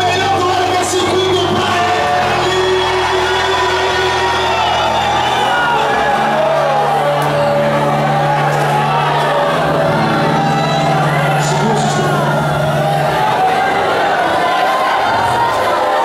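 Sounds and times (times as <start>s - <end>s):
long held organ chords: 0.0s - 15.0s
congregation singing and calling out: 0.0s - 16.0s.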